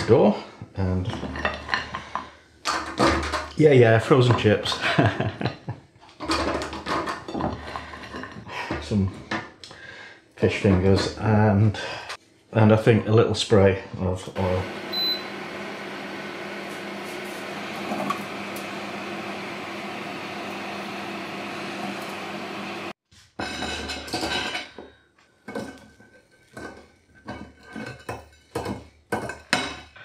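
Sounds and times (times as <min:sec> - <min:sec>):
air fryer fan whirring: 0:14.4 - 0:23.0
control panel beep: 0:14.9 - 0:15.3.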